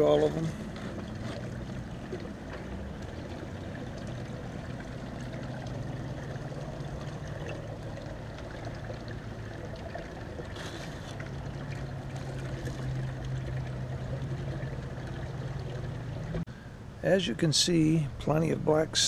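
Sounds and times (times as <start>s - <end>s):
water running over sluice box: 0.0s - 16.5s
steady low hum: 0.0s - 19.0s
scraping rustle of dirt scooped: 10.6s - 11.2s.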